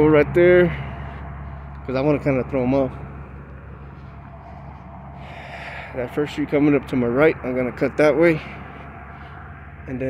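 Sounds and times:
low hum of street traffic: 0.0 - 10.0.

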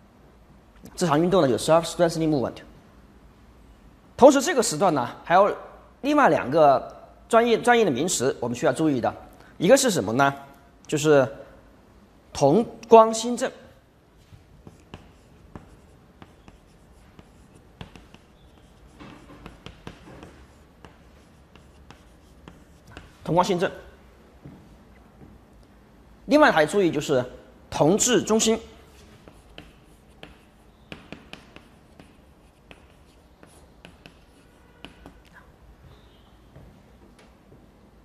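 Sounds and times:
low room hum: 0.0 - 38.0
chalk scratching: 14.5 - 23.7, 28.8 - 35.4
chalk tapping on blackboard: 14.6 - 23.2, 29.0 - 35.3.

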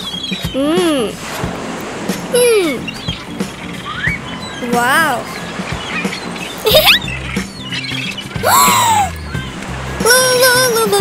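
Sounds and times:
cartoon background music: 0.0 - 11.0
cartoon squawk pitch glide: 6.0 - 9.3.

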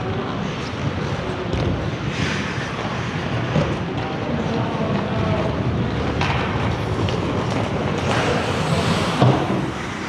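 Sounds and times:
skate blades scraping ice: 6.8 - 10.0.

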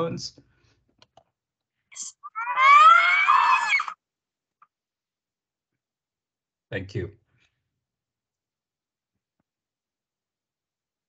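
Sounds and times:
high-pitched animal call: 2.0 - 4.0.

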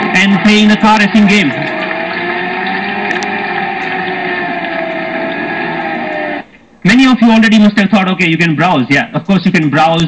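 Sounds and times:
racing car engine drone: 0.0 - 6.7.

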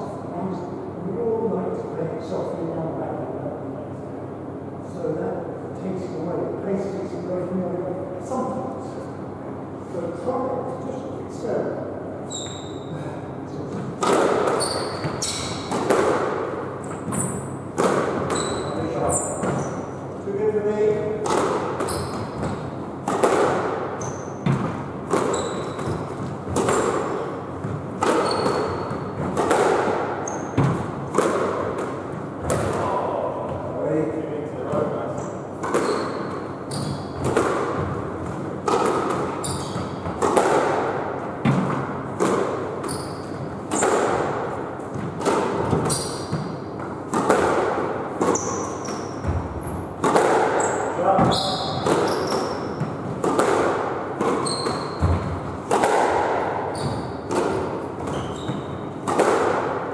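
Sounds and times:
shoes squeaking on wooden floor: 12.3 - 12.9, 14.5 - 15.7, 18.3 - 19.8, 21.8 - 22.6, 24.0 - 29.4, 35.8 - 37.9, 39.3 - 40.2, 42.8 - 43.9, 45.6 - 46.6, 48.3 - 49.9, 50.6 - 53.0, 54.3 - 55.4, 56.7 - 57.3, 57.9 - 58.9
squash ball hitting rackets and walls: 13.7 - 59.9.

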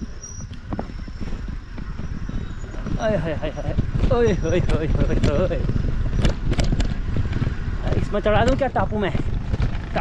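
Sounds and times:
tyre and wind noise: 0.0 - 10.0
bike frame and chain rattling: 0.2 - 10.0.

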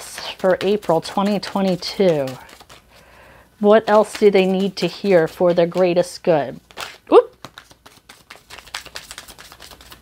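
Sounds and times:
cards being shuffled: 0.0 - 3.1, 3.7 - 10.0.

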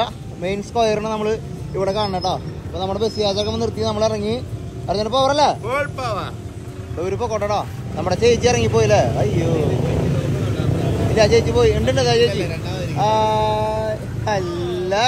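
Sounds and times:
bus engine idling: 0.0 - 15.0
men talking: 0.0 - 15.0.

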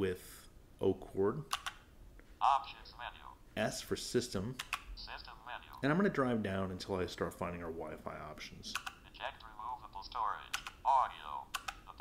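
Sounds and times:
synthesized voice speaking: 2.4 - 4.4, 5.0 - 6.4, 7.7 - 12.0.

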